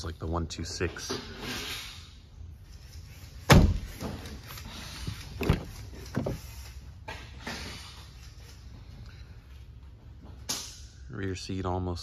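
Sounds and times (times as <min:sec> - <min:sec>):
car door clunks: 0:03.5 - 0:04.0, 0:05.4 - 0:06.4
car door thud: 0:03.5 - 0:04.0.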